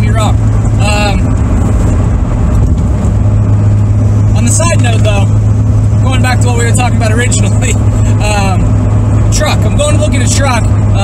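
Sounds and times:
car engine and road noise drone: 0:00.0 - 0:11.0.

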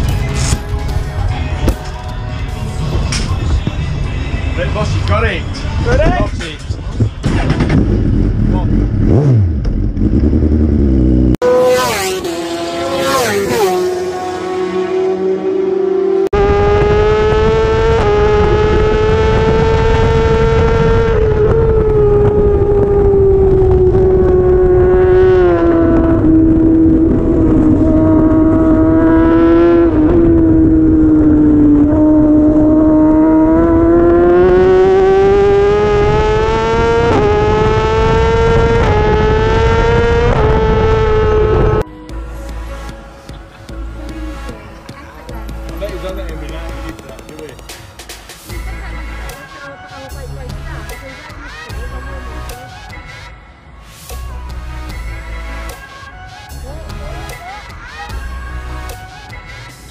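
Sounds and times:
racing motorcycles passing by: 0:07.7 - 0:41.9
wind rush: 0:16.4 - 0:41.8.

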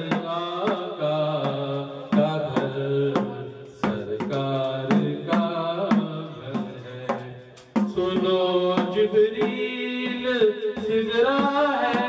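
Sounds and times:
man singing a devotional chant: 0:00.0 - 0:12.0.

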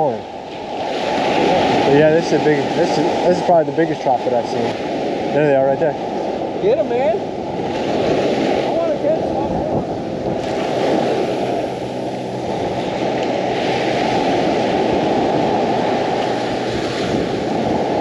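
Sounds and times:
surf breaking on beach: 0:00.0 - 0:18.0
wind on microphone: 0:00.0 - 0:18.0.

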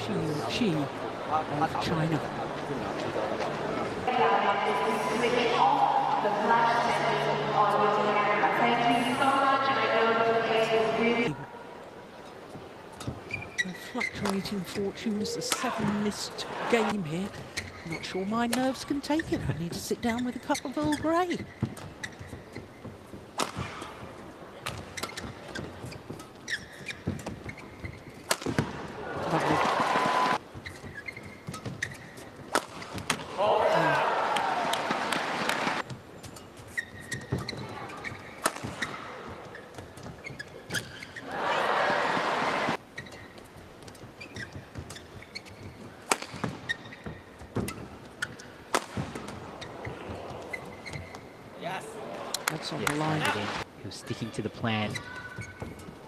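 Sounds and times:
racquets striking shuttlecock: 0:23.3 - 0:24.0, 0:28.1 - 0:28.8, 0:30.8 - 0:33.4, 0:38.3 - 0:39.2, 0:46.0 - 0:50.6
crowd cheering and shouting: 0:29.0 - 0:30.4, 0:33.4 - 0:35.8, 0:41.2 - 0:42.8.

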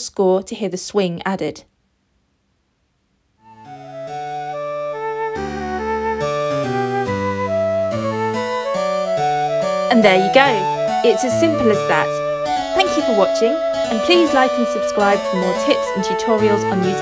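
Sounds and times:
synthesized flute melody: 0:03.4 - 0:17.0
bass line: 0:03.5 - 0:17.0.

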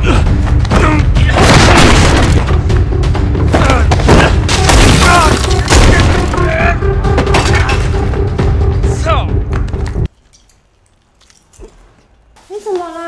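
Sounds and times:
men grunting and crying out: 0:00.0 - 0:02.1, 0:03.4 - 0:06.9
dense film score with booming hits: 0:00.0 - 0:09.0.

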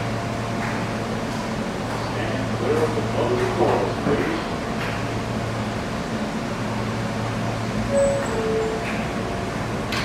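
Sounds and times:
ventilation hum: 0:00.0 - 0:10.0
two-note door chime: 0:07.9 - 0:08.8.

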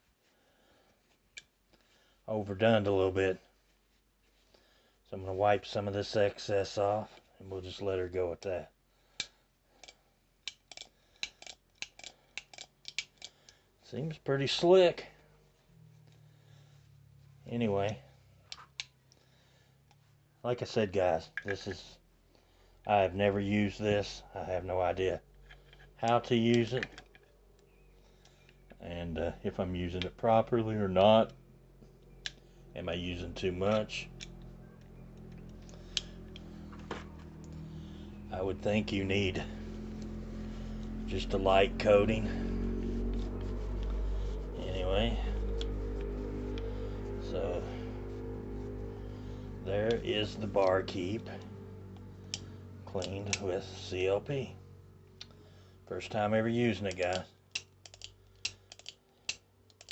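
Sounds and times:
revolver metallic clicks: 0:09.2 - 0:13.6, 0:32.0 - 0:32.4, 0:56.8 - 0:59.9
low hum: 0:13.2 - 0:58.7
revolver hammer clicking: 0:56.9 - 0:59.9.

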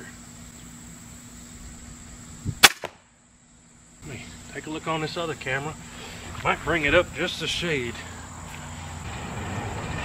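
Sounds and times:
crossbow string snap: 0:02.6 - 0:03.0.

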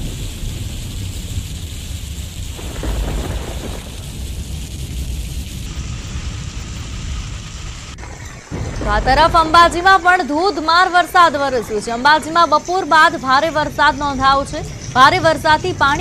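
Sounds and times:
heavy rain pouring on road: 0:00.0 - 0:11.1.

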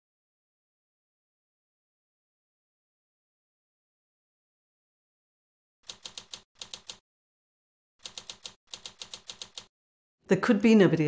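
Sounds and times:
typewriter keys striking: 0:05.9 - 0:07.0, 0:08.0 - 0:09.7.

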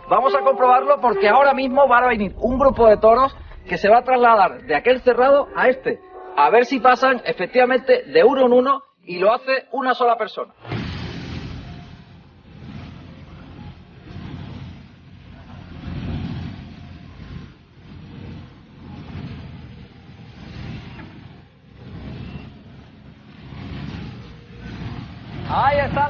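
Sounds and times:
low rumbling noise: 0:00.0 - 0:08.3, 0:10.6 - 0:26.0.

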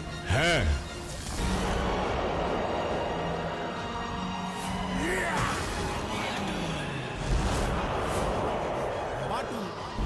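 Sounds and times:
tense background music: 0:00.0 - 0:10.0.

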